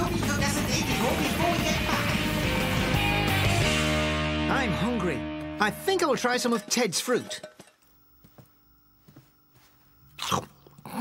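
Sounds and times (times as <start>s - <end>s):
animal-like vocal sound: 10.1s - 11.0s.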